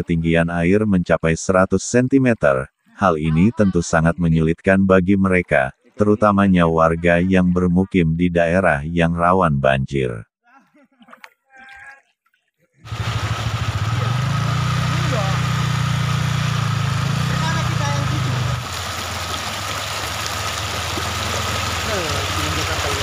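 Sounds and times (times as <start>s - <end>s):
rushing water: 11.1s - 23.0s
small motorcycle engine running: 12.9s - 23.0s.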